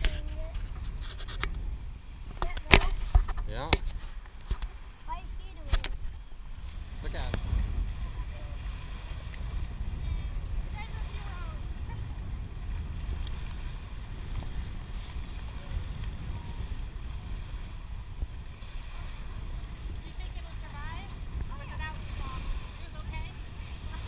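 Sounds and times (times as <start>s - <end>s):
wind rumbling on microphone: 0.0s - 24.0s.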